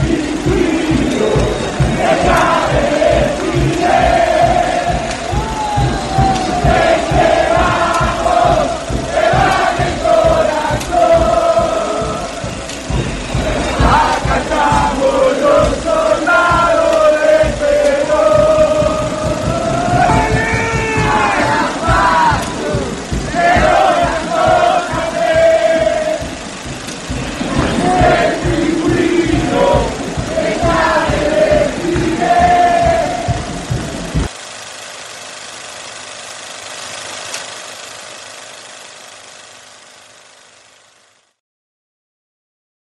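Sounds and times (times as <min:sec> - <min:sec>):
crowd chanting in unison: 0:00.0 - 0:34.3
music with singing: 0:00.0 - 0:34.3
steady drum beat: 0:00.0 - 0:34.4
steady hiss: 0:00.0 - 0:41.4.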